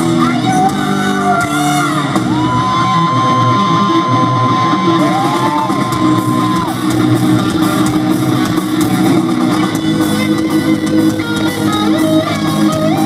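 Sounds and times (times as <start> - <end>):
heavy metal band playing live: 0.0 - 13.0.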